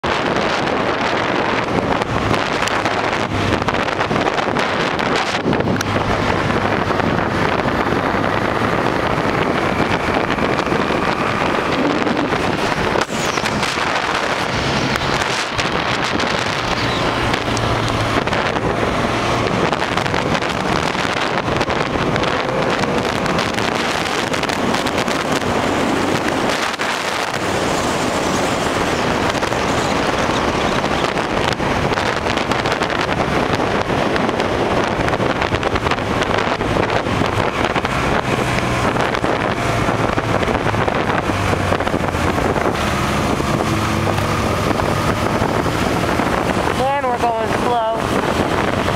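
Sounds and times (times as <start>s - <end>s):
motorcycle engine running: 0.0s - 48.9s
wind buffeting microphone: 0.0s - 48.9s.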